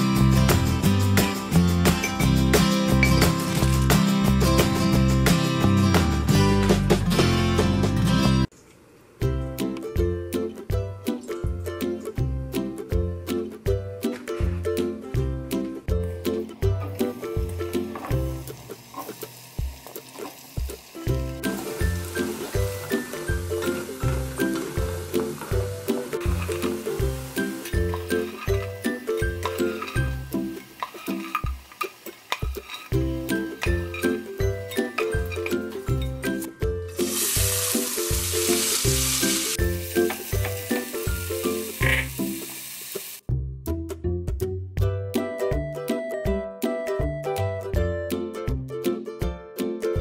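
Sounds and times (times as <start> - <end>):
background music with steady beat: 0.0 - 8.5, 9.2 - 18.4, 43.2 - 50.0
plucked background music: 0.0 - 8.5, 9.2 - 50.0
oil sizzling: 16.1 - 43.3
wooden spoon stirring rice: 27.9 - 30.1, 30.7 - 33.0.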